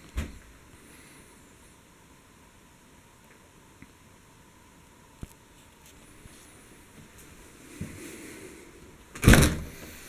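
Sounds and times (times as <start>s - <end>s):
faint room noise: 0.0s - 10.0s
back door opening: 9.2s - 9.8s.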